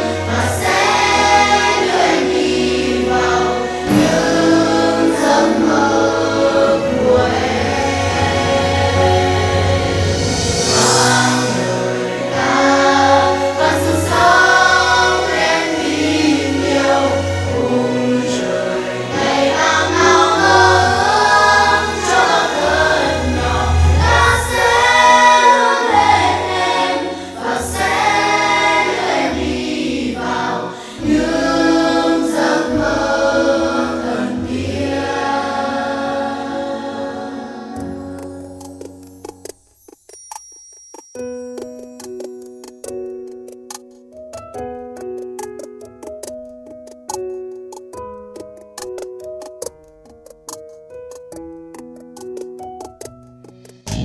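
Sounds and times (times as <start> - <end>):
choir singing slow song: 0.0 - 39.0
instrumental accompaniment: 0.0 - 54.0
steady bass line: 20.6 - 25.4.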